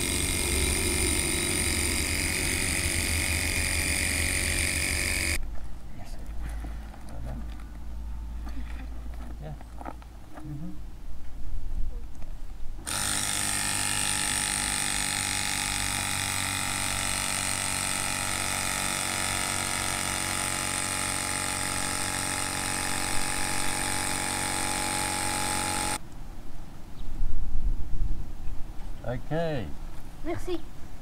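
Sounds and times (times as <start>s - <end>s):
electric air pump running: 0.0s - 5.4s, 12.8s - 26.0s.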